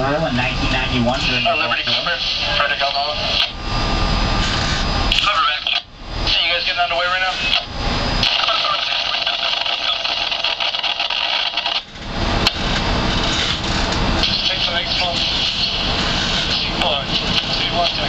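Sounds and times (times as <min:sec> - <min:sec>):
deep rumble: 0:03.5 - 0:05.3, 0:11.9 - 0:18.0
indistinct voices: 0:14.2 - 0:18.0.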